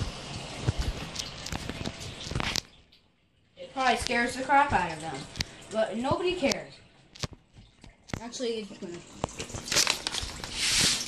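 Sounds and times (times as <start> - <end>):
footsteps: 0.0 - 2.6.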